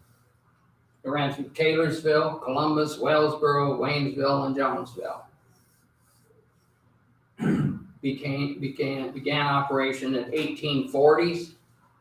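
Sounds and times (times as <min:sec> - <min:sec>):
person clearing throat: 0:07.4 - 0:08.0.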